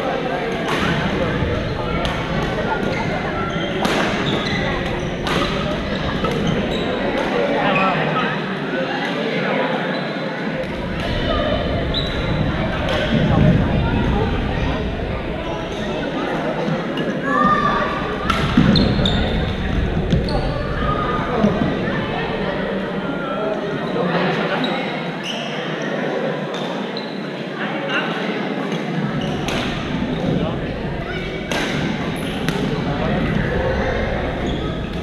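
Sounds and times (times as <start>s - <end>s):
mixed voices of players: 0.0s - 26.5s, 27.2s - 35.0s
shoe squeaks: 2.9s - 7.2s, 11.8s - 12.4s.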